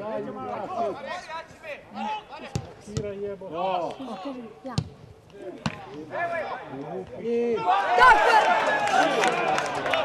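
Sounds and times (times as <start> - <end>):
voices shouting: 7.6 - 9.4.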